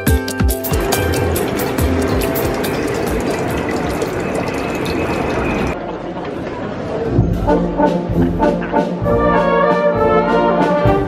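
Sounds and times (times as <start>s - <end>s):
background music with beat: 0.0s - 3.0s, 7.2s - 11.0s
water running into bottle: 0.7s - 5.8s.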